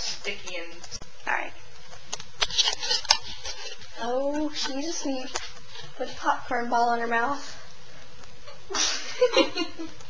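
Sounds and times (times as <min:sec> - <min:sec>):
soft rustling: 0:00.0 - 0:08.4.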